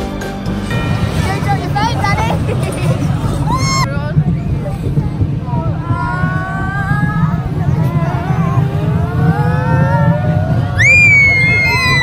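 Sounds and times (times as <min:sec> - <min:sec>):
low rumble of moving ride: 0:00.0 - 0:12.0
children squealing and calling out: 0:05.8 - 0:12.0.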